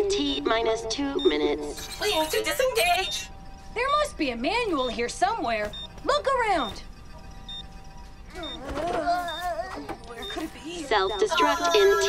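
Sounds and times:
wavering pitched alarm sound: 0:00.0 - 0:12.0
short high electronic beeps: 0:01.2 - 0:03.5.

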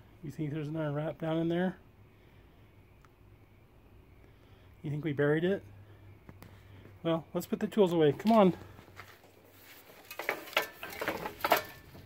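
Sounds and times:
metal tools knocking and clinking: 0:10.0 - 0:12.0.

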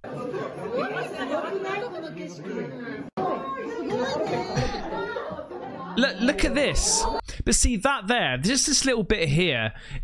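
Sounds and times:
people chattering excitedly: 0:00.0 - 0:07.3.

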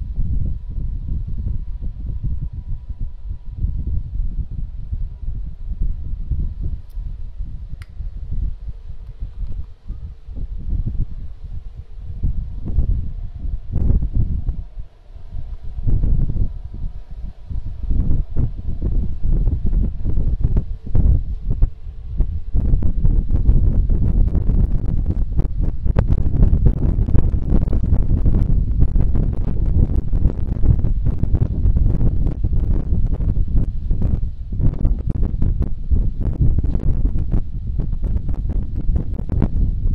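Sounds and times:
wind buffeting microphone: 0:00.0 - 0:39.9.

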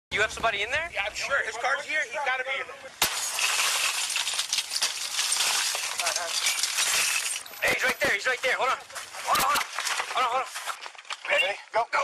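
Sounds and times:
broken glass clinking: 0:03.0 - 0:08.0.

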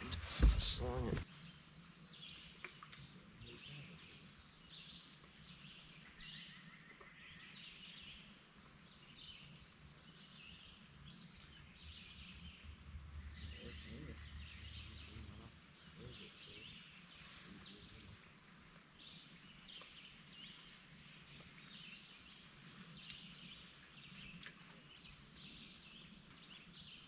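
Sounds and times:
songbirds singing: 0:00.0 - 0:27.0.

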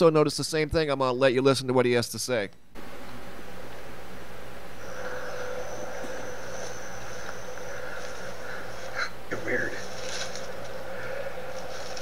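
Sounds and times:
insects buzzing: 0:02.8 - 0:12.0
high thin insect drone: 0:04.7 - 0:12.0.

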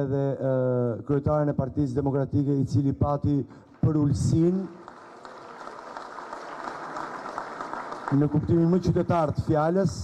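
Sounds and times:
crowd clapping: 0:03.7 - 0:09.9.

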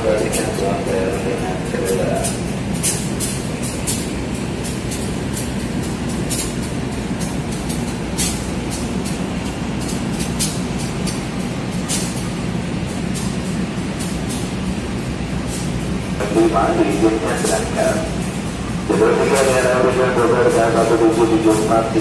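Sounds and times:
train coaches rumbling: 0:00.0 - 0:22.0
wheels clicking and knocking on track: 0:00.0 - 0:22.0.

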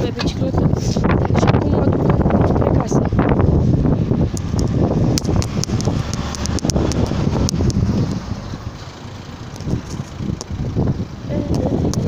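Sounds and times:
wind rumbling on microphone: 0:00.0 - 0:12.0
sharp clicks and rattles: 0:04.3 - 0:12.0.

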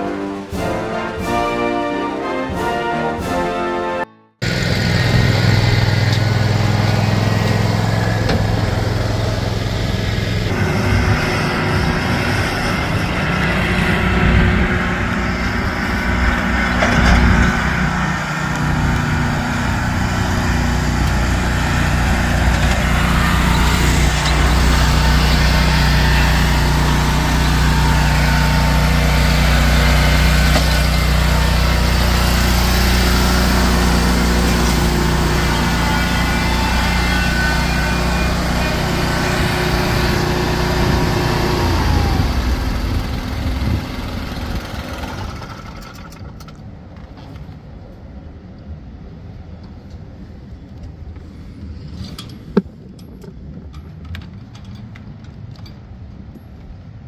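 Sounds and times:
mower engine running: 0:04.4 - 0:46.6.

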